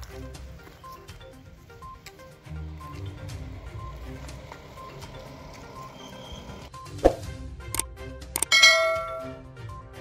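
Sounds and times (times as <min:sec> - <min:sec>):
mouse clicks: 0:07.8 - 0:08.5
bright bell ding: 0:08.4 - 0:09.4.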